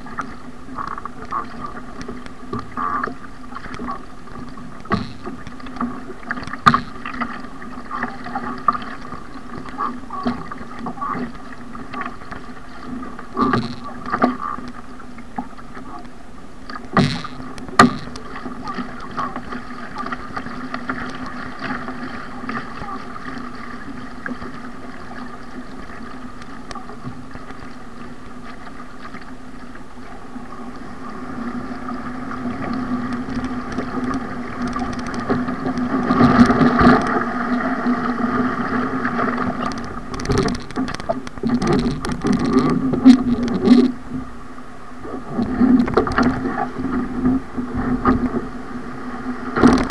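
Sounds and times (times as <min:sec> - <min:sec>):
paddle strokes: 0:00.0 - 0:49.9
water splashing against hull: 0:00.0 - 0:49.9.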